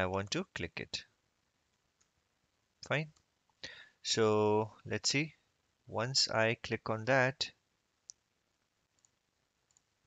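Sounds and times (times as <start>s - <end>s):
computer mouse clicks: 1.7s - 2.2s, 8.0s - 8.3s, 8.9s - 9.9s.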